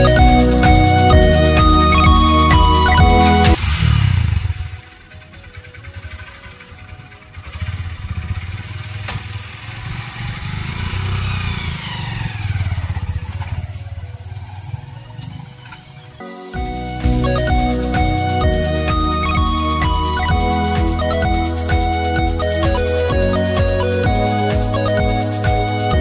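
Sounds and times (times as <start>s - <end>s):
motorcycle engine revving: 1.5s - 16.2s.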